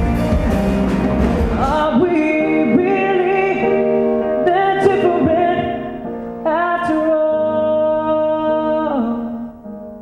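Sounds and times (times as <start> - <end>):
keyboard accompaniment: 0.0 - 10.0.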